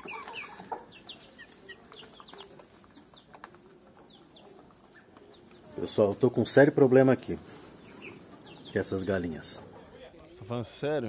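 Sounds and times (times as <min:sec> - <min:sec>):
chickens clucking: 0:00.0 - 0:10.2.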